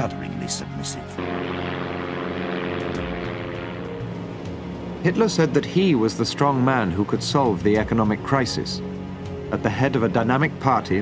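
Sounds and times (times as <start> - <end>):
propeller airplane engine drone: 0.0 - 11.0.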